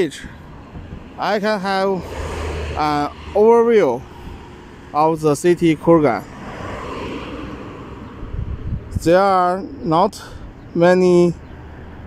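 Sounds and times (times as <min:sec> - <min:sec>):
wind gusting on microphone: 0:00.0 - 0:10.8
car passing with tyre rush: 0:00.2 - 0:09.0.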